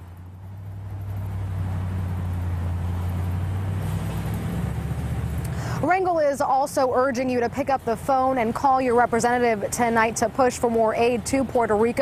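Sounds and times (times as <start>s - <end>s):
motor vehicle running nearby: 0.0s - 12.0s
road traffic rumble: 0.0s - 12.0s.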